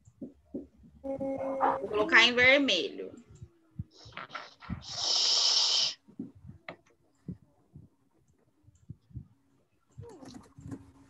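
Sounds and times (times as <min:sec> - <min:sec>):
breath puffs into microphone: 0:03.9 - 0:06.2
loud breath hiss: 0:04.8 - 0:06.0.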